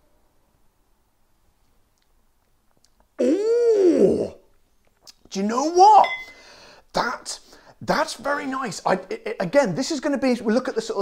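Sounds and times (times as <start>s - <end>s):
man's drawn-out ooh: 3.2s - 4.4s.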